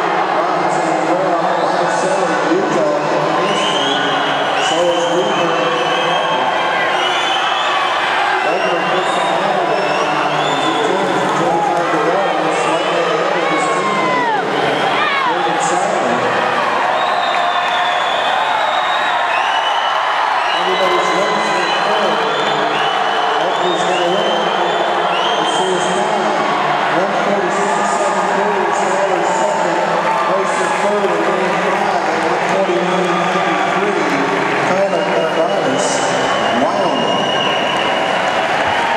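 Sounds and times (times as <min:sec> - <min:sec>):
crowd cheering and shouting: 0:00.0 - 0:38.9.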